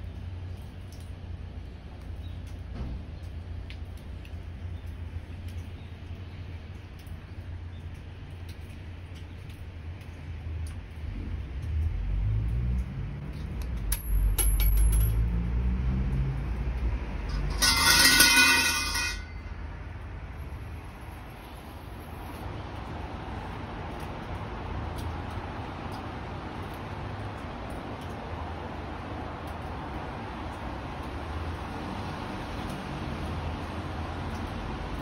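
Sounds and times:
street traffic rumble: 0.0 - 35.0
heavy vehicle passing: 15.0 - 24.8.

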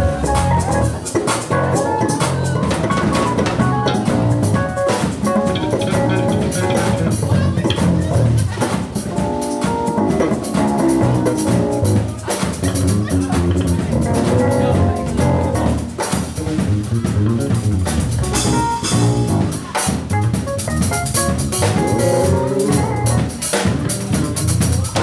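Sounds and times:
drum kits with cymbals: 0.0 - 25.0
electric bass: 0.0 - 25.0
electric guitar: 0.0 - 25.0
keyboard: 0.0 - 25.0.

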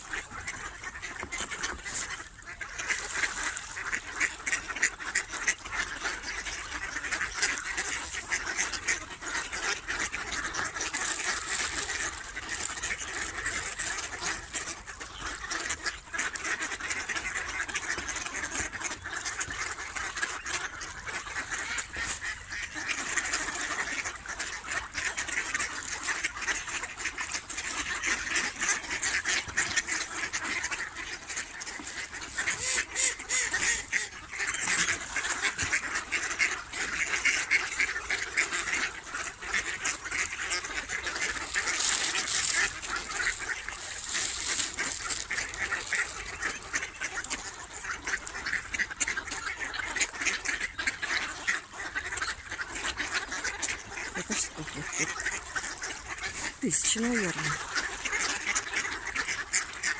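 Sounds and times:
flock of ducks quacking: 0.0 - 59.9.

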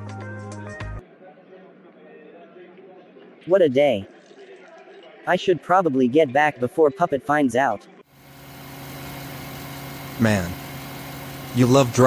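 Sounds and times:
car engine humming: 8.2 - 12.0.

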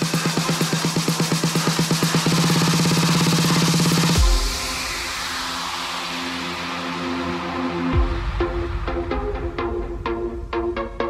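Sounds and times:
electronic drum roll: 0.0 - 11.0.

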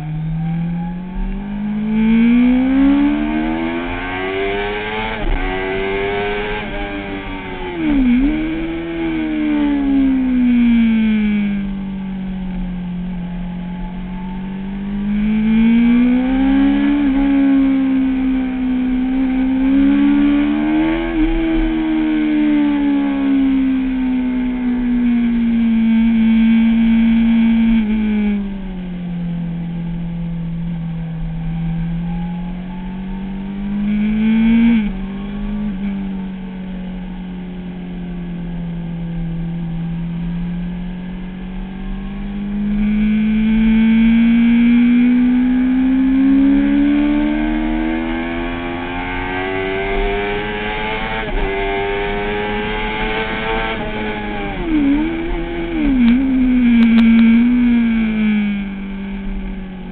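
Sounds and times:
motorcycle engine revving: 0.0 - 59.9.

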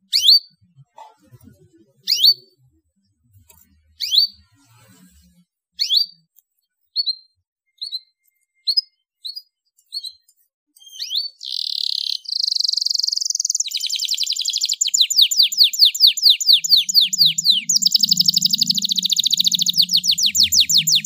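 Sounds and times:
canary chirping and trilling: 0.0 - 21.0.

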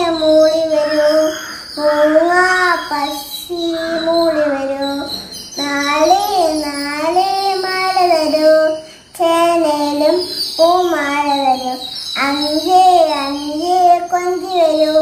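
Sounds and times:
girl singing unaccompanied: 0.0 - 15.0.

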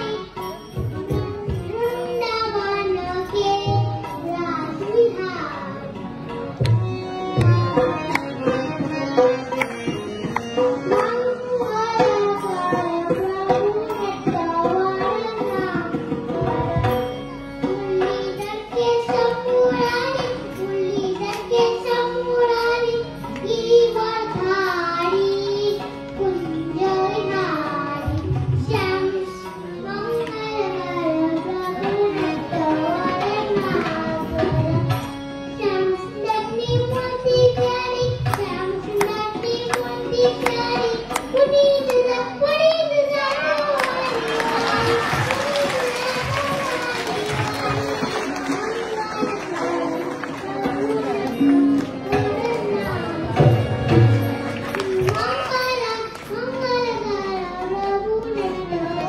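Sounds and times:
boy singing into a microphone: 0.0 - 54.1, 54.7 - 59.0
hand drums: 6.5 - 22.6, 43.2 - 55.8
audience clapping along: 43.2 - 53.0, 54.0 - 56.5.

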